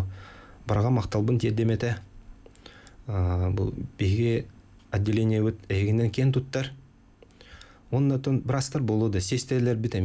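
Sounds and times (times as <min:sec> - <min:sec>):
man speaking into microphone: 0:00.0 - 0:02.1, 0:03.0 - 0:06.8, 0:07.9 - 0:10.0.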